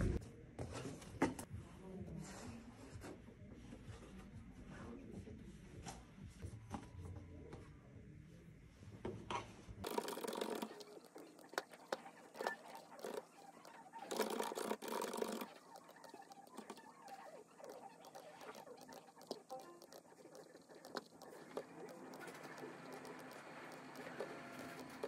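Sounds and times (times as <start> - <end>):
computer mouse clicks: 9.8 - 25.0.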